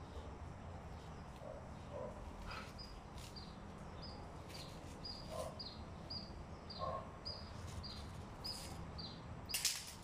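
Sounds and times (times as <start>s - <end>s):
bird chirping: 0.9s - 9.6s.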